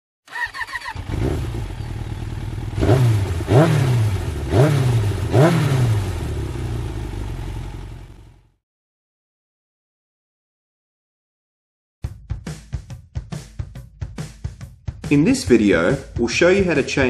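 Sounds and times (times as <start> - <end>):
motorcycle engine revving: 0.3 - 8.6.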